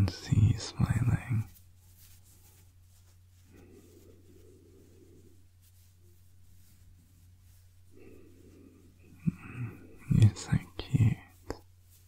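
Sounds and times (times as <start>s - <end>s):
soft whispering: 0.0s - 12.0s.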